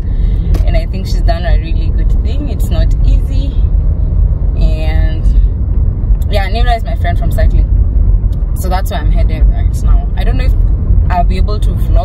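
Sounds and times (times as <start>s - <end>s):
road and engine rumble in car: 0.0s - 12.0s
woman talking: 0.5s - 3.6s, 4.6s - 5.4s, 6.2s - 7.7s, 8.6s - 12.0s.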